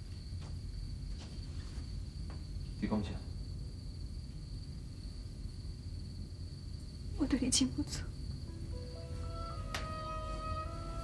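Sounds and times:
crickets trilling: 0.0 - 11.0
woman speaking: 7.2 - 8.1.

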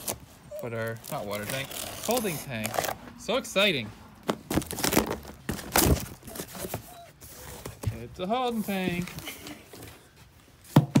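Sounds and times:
packing paper rustling: 0.0 - 3.0, 4.3 - 9.9.

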